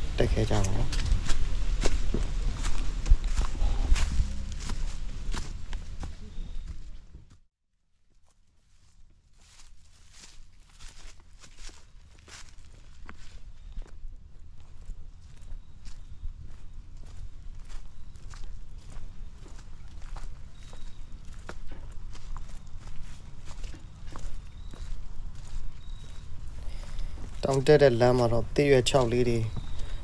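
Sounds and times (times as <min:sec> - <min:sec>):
footsteps on dry leaves: 0:00.0 - 0:07.0, 0:08.2 - 0:30.0
low rumble: 0:00.9 - 0:07.0.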